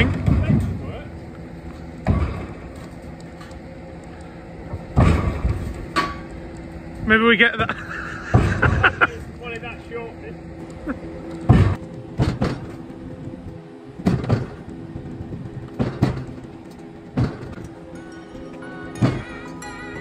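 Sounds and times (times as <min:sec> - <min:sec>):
engine droning under load: 0:00.0 - 0:20.0
heavy metallic clanks: 0:00.0 - 0:20.0
music: 0:00.0 - 0:20.0.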